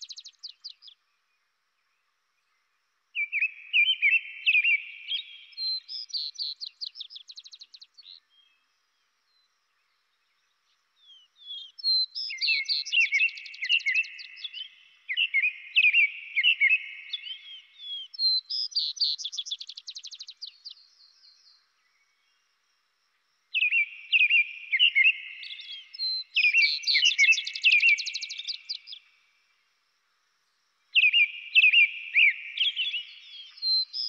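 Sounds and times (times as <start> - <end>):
robin whistled caroling: 23.6 - 29.0, 31.0 - 34.0.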